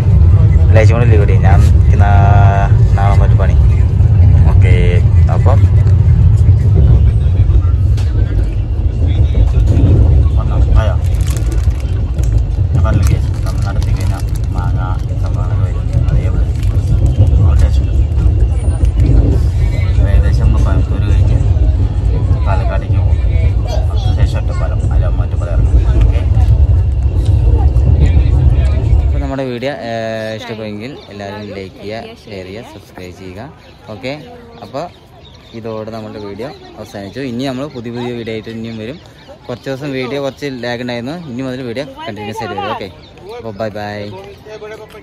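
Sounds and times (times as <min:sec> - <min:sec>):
faint voices: 0:00.0 - 0:45.0
train carriage rumbling on track: 0:00.0 - 0:45.0.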